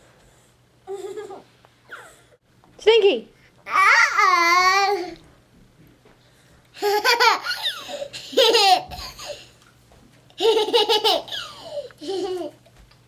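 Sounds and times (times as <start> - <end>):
toddler laughing: 0.9 - 2.2, 6.8 - 9.4, 10.4 - 12.6.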